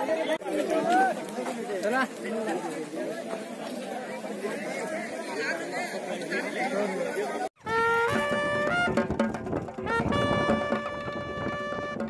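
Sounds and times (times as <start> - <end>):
people chattering: 0.0 - 11.1
music: 7.6 - 12.0.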